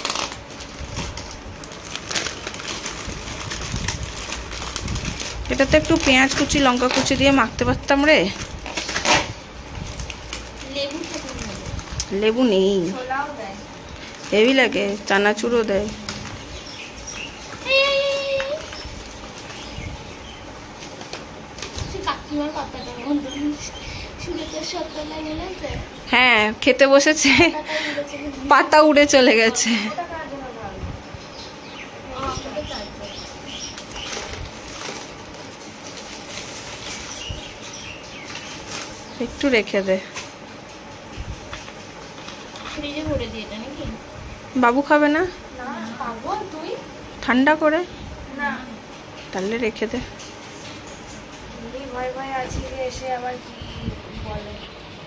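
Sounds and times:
plastic packet crinkling: 0:00.0 - 0:22.3, 0:33.1 - 0:43.0
woman speaking: 0:05.5 - 0:08.5, 0:10.6 - 0:16.3, 0:22.0 - 0:31.0, 0:32.0 - 0:33.3, 0:39.2 - 0:40.2, 0:42.7 - 0:50.2, 0:51.5 - 0:54.8.

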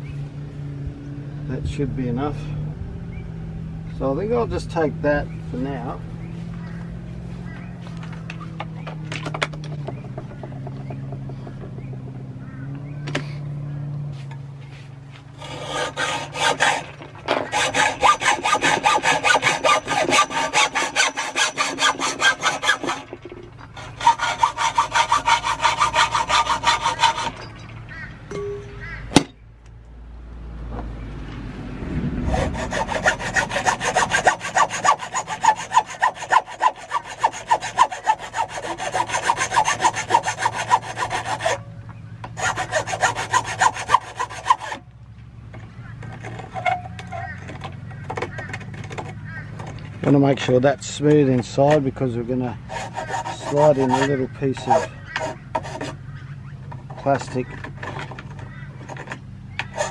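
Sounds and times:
hand file on metal tube: 0:15.4 - 0:27.6, 0:32.2 - 0:41.6, 0:42.4 - 0:44.8, 0:52.7 - 0:56.0, 0:57.0 - 0:59.9
hacksaw cutting metal pole: 0:15.4 - 0:27.8, 0:32.2 - 0:41.7, 0:42.3 - 0:44.8, 0:46.0 - 0:51.9, 0:52.6 - 0:56.0, 0:56.7 - 0:59.9.

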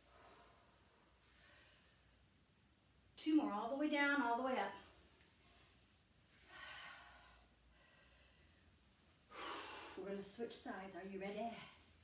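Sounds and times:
woman breathing from exertion: 0:06.4 - 0:08.7, 0:09.3 - 0:10.0.

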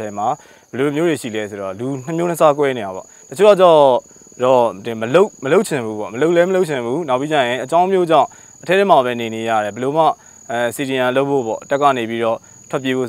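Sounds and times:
high-pitched insect trill: 0:00.0 - 0:13.0
man talking: 0:00.0 - 0:13.0.

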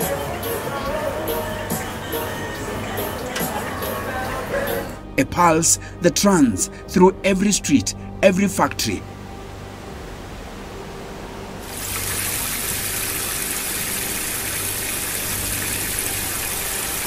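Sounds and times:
hose water splashing on pavement: 0:11.6 - 0:17.0.

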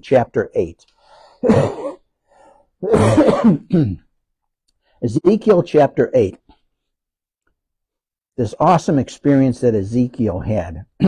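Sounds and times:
man clearing his throat: 0:01.4 - 0:02.1, 0:02.8 - 0:04.1.

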